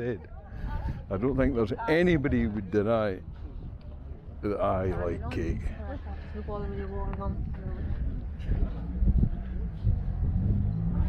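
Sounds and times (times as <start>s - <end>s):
low steady rumble: 5.0s - 11.0s.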